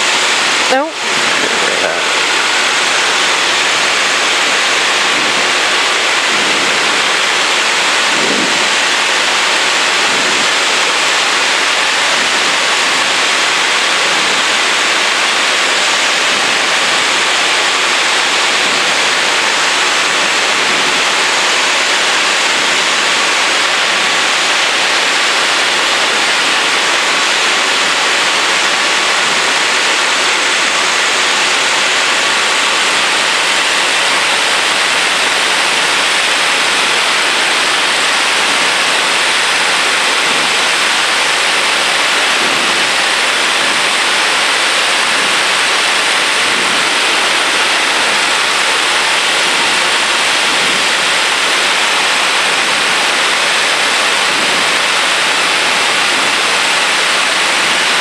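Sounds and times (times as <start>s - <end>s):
propeller engine hum: 0.0s - 51.6s
wind rushing over camera: 0.0s - 58.0s.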